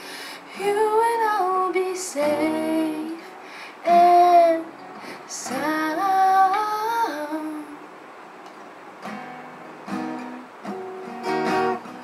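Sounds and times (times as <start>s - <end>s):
woman singing: 0.4s - 7.9s.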